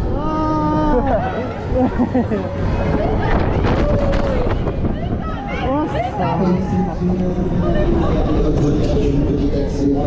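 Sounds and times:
wind buffeting microphone: 2.6s - 9.6s.

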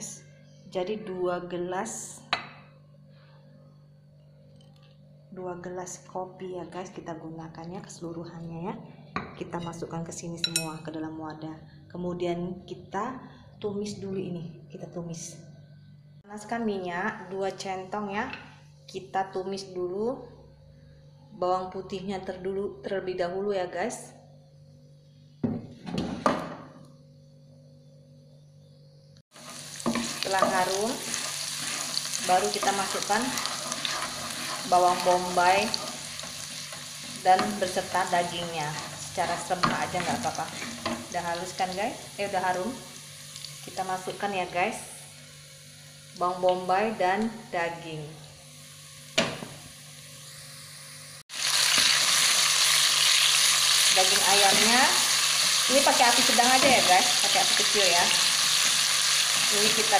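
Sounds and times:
meat sizzling in hot oil: 29.3s - 44.3s, 48.3s - 59.9s
faint garlic sizzle: 29.3s - 59.9s
wooden spatula stirring: 29.5s - 35.0s, 38.6s - 41.2s.

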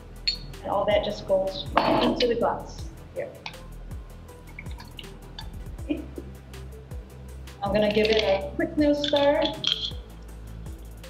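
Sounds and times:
small drips and ticks: 4.4s - 5.6s.

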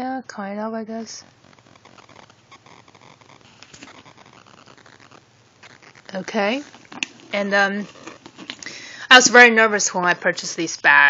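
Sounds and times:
handbag rustling: 1.0s - 8.8s.

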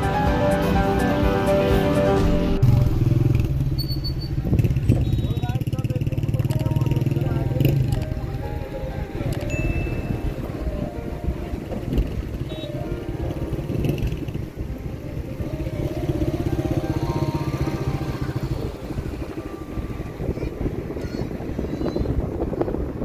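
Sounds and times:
music playing: 0.0s - 3.8s, 6.5s - 21.4s
vehicle engine running: 0.0s - 21.0s.

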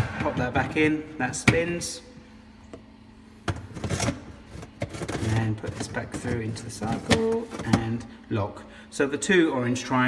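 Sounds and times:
plastic parts knocking and scraping: 3.5s - 7.9s.

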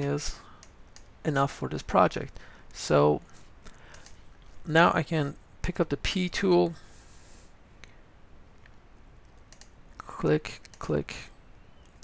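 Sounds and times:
low room hiss: 0.0s - 12.0s
faint computer mouse clicks: 0.6s - 1.1s, 3.4s - 4.2s, 8.6s - 9.8s, 10.6s - 10.9s.

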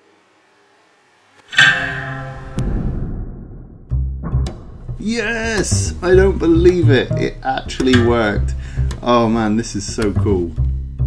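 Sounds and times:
guitar string plucked: 1.5s - 3.2s, 3.9s - 9.2s.

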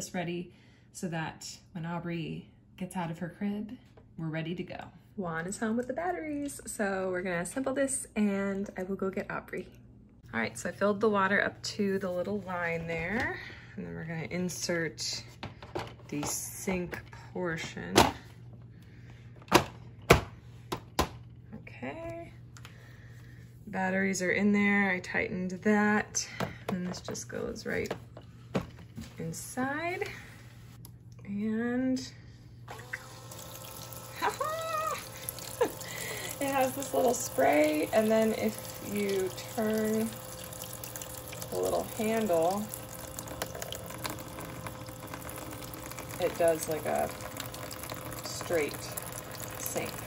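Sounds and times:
toy pump humming: 32.7s - 50.0s
water splashing into plastic basin: 34.9s - 50.0s.

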